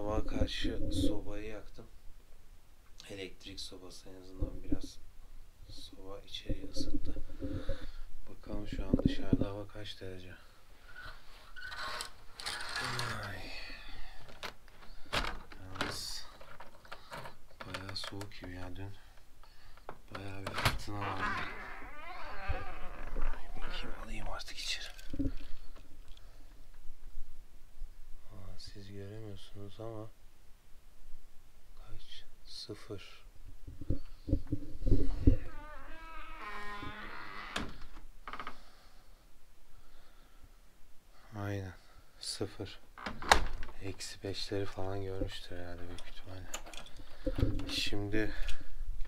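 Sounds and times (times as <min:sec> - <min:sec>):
wooden door creaking: 0:10.9 - 0:13.5, 0:14.3 - 0:18.3, 0:20.1 - 0:25.8, 0:33.9 - 0:38.7, 0:43.0 - 0:43.9.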